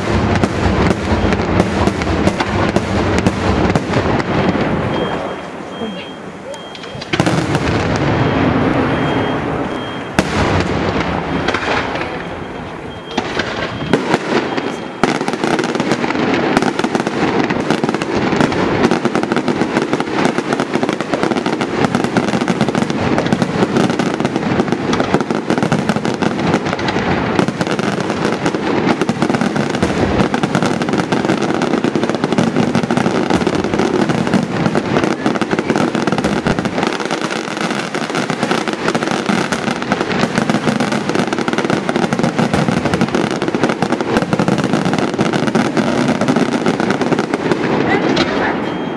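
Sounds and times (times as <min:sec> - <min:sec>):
fireworks bursting and crackling: 0:00.0 - 0:48.9.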